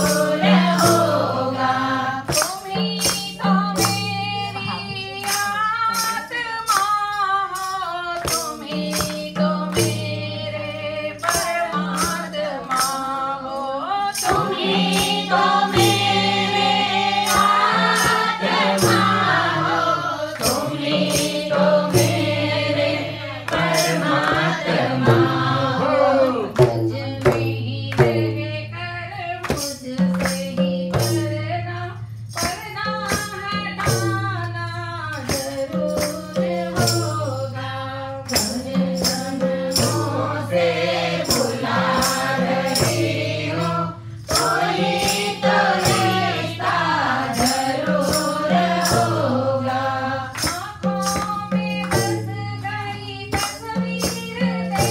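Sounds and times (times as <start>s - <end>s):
hand claps: 0.0s - 10.1s, 11.2s - 13.1s, 20.3s - 22.2s, 23.5s - 25.5s, 26.2s - 28.3s, 29.4s - 31.2s, 32.3s - 34.6s, 35.2s - 37.1s, 38.2s - 40.1s, 44.3s - 54.9s
hand drum beat: 0.0s - 54.9s
women singing together: 0.0s - 54.9s.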